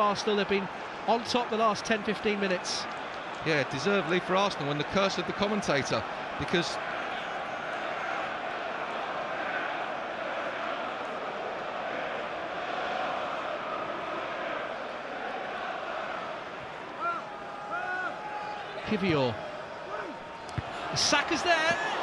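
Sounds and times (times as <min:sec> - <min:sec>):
stadium crowd noise: 0:00.0 - 0:22.0.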